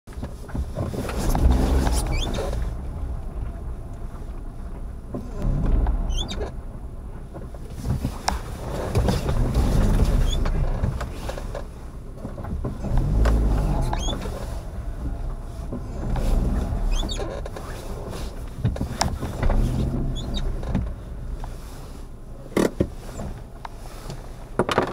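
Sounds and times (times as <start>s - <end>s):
car rumble inside: 0.1s - 24.9s
short high squeak: 1.8s - 2.6s, 6.1s - 6.4s, 13.7s - 14.4s, 20.1s - 20.5s.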